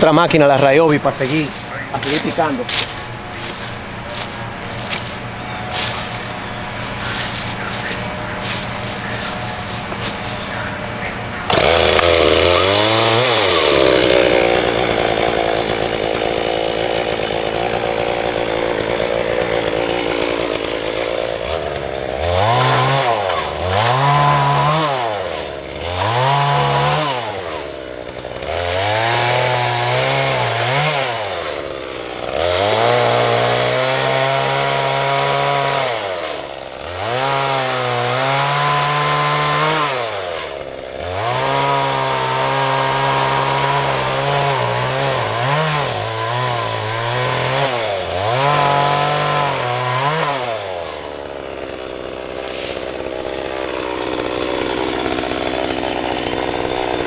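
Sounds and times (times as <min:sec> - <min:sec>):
chainsaw cutting wood: 0:00.0 - 0:57.0.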